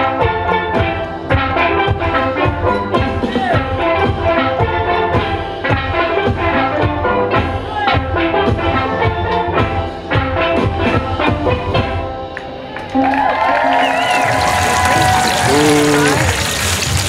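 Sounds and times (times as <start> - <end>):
steel pan band playing: 0.0 - 17.0
people talking: 14.9 - 16.4.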